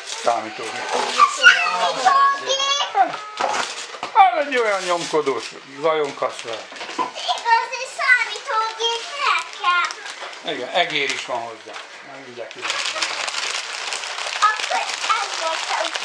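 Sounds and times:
wrapping paper rustling: 0:00.0 - 0:16.0
child talking: 0:01.0 - 0:03.4, 0:07.1 - 0:10.2, 0:12.6 - 0:13.3, 0:14.4 - 0:16.0
woman talking: 0:14.4 - 0:16.0.

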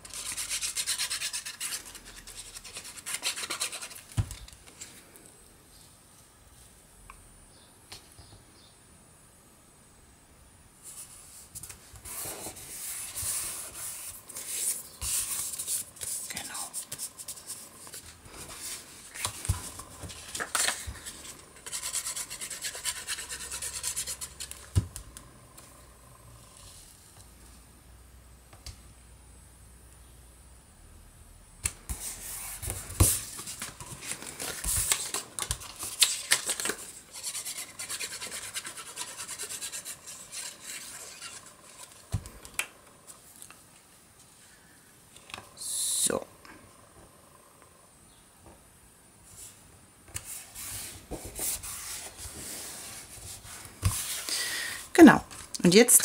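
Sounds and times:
hands rubbing paper: 0:00.0 - 0:04.2, 0:10.9 - 0:24.6, 0:31.9 - 0:42.0.

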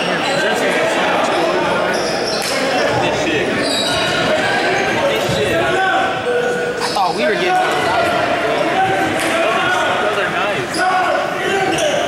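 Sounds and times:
voices echoing in hall: 0:00.0 - 0:12.0.

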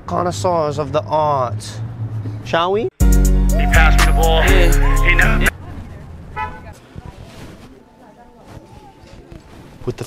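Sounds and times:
parking lot ambience: 0:00.0 - 0:10.0
car horn chirp: 0:06.4 - 0:06.7.

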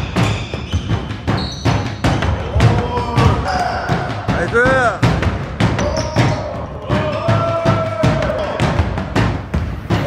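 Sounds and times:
sneakers squeaking on court: 0:00.0 - 0:02.4
basketball bouncing on hardwood: 0:00.0 - 0:09.8.

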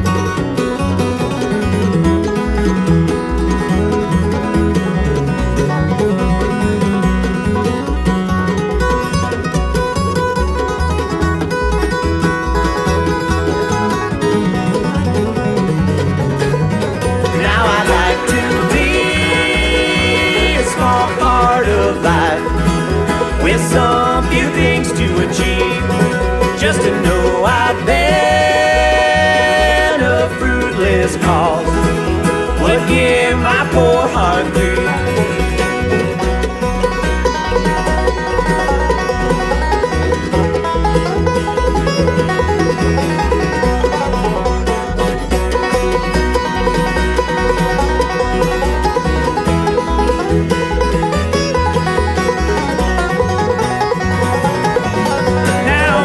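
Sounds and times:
bluegrass band playing: 0:00.0 - 0:56.0.

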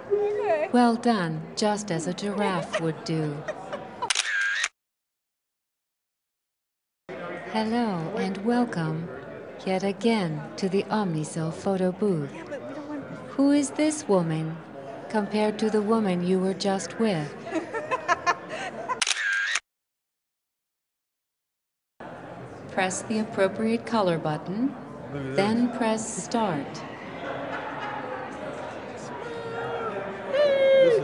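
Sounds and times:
voices and laughter: 0:01.9 - 0:04.2, 0:17.2 - 0:19.1, 0:25.4 - 0:31.0
camera shutter click and whirr: 0:04.0 - 0:04.7, 0:19.0 - 0:19.6.

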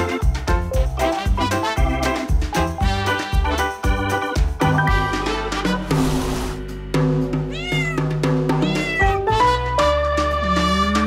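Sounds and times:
background music: 0:00.0 - 0:11.0
short rush of noise: 0:05.9 - 0:06.7
cat meowing: 0:07.5 - 0:09.3.

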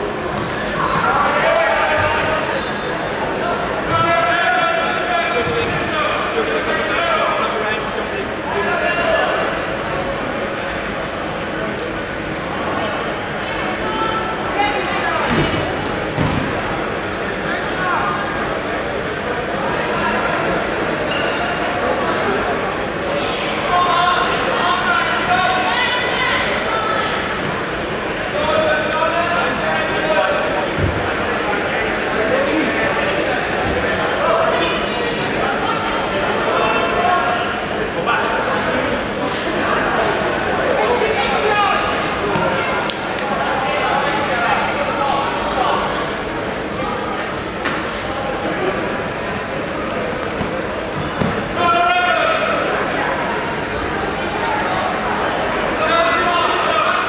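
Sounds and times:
voices calling out in hall: 0:00.0 - 0:57.0.

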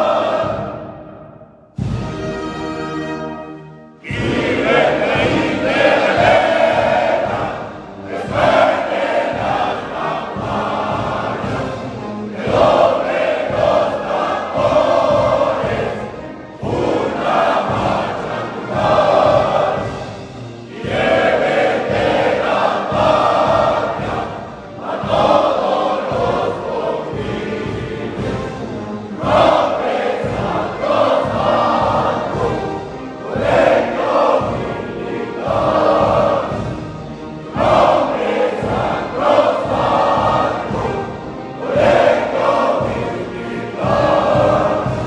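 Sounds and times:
group singing a hymn in unison: 0:00.0 - 0:01.3, 0:04.0 - 0:45.0.

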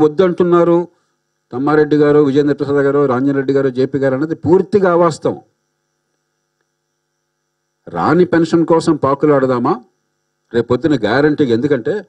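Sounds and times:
man speaking into a microphone: 0:00.0 - 0:05.5, 0:07.8 - 0:09.9, 0:10.5 - 0:12.0.

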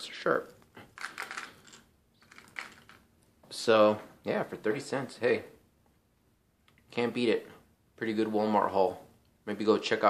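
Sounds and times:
plastic clicking and rustling: 0:01.0 - 0:03.0.

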